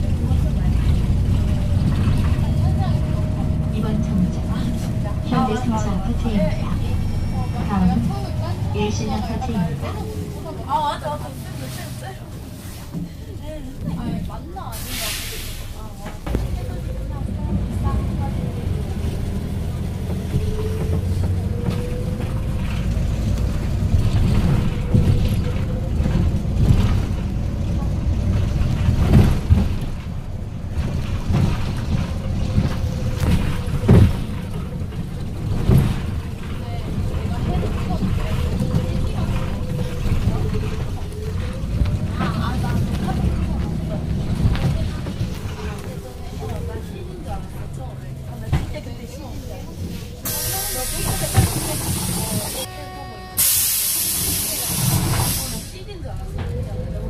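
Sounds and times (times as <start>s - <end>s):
bus engine and road rumble: 0.0s - 57.0s
hiss of air: 14.8s - 15.8s, 53.4s - 55.8s.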